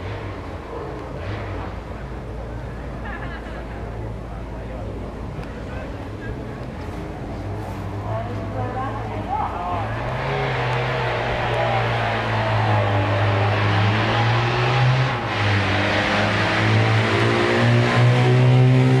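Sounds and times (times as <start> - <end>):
car engine running at raised revs: 4.0 - 19.0.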